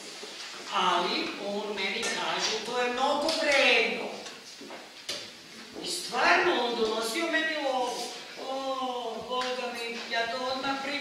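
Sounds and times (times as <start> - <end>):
woman speaking: 0.7 - 4.4, 5.6 - 11.0.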